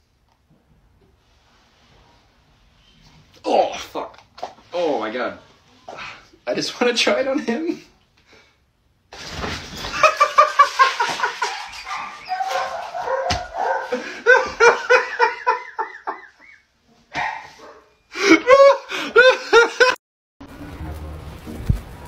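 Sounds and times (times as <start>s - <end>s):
dog barking and yelping: 11.3s - 14.7s, 17.1s - 18.0s.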